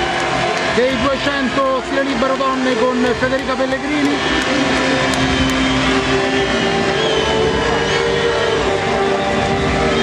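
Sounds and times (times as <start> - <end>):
crowd noise: 0.0 - 10.0
music over public address: 0.0 - 10.0.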